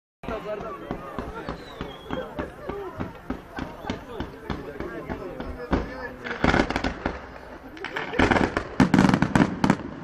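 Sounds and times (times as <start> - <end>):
fireworks bangs and crackles: 0.2 - 10.0.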